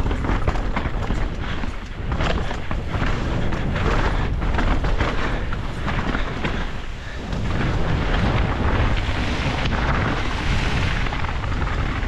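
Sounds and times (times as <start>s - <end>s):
bike tyres rolling over dirt: 0.0s - 12.0s
wind rushing over microphone: 0.0s - 12.0s.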